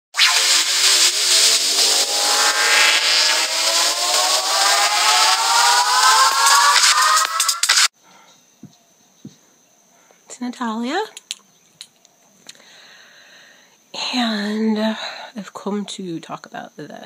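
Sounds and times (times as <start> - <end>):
rising tonal sweep over hiss: 0.2 - 7.9.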